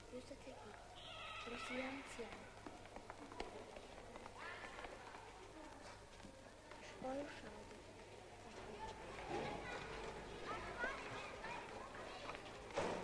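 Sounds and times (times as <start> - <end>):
faint voices murmuring: 0.0 - 13.0.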